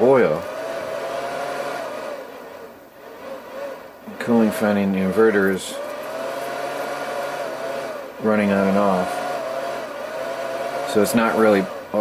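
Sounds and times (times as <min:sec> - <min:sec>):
cooling fan whirring: 0:00.0 - 0:12.0.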